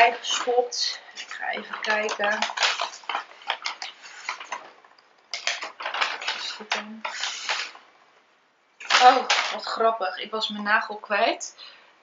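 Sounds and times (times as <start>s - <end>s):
packaging crinkling and rustling: 0.1s - 7.8s.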